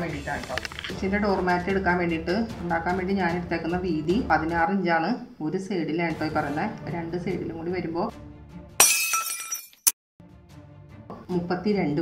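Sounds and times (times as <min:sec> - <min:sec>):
glass shattering crash: 0:08.8 - 0:10.0.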